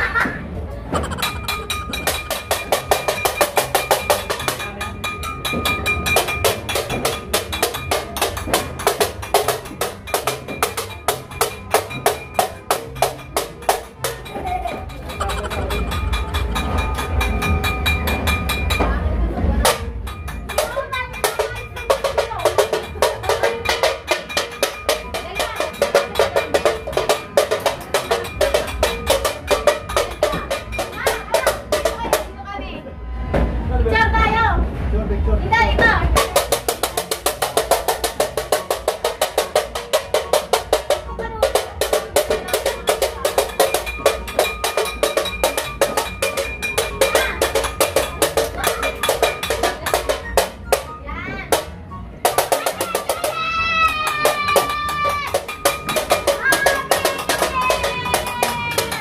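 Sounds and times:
steel pot beaten with utensil: 1.0 - 32.4, 36.2 - 59.0.

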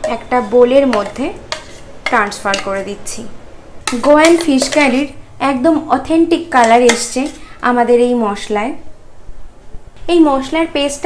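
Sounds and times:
metal spoon scraping jar: 0.0 - 2.8, 3.9 - 5.0.

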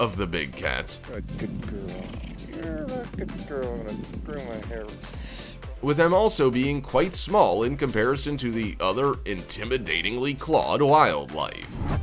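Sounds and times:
cheetah purring: 1.1 - 5.6.

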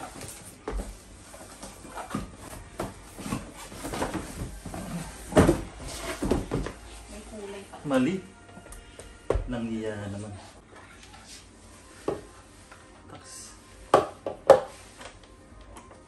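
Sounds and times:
cardboard rustling: 0.0 - 7.3.

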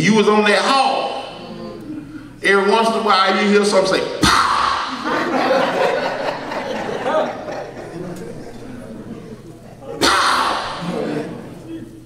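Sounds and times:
people chuckling and laughing: 4.9 - 11.7.

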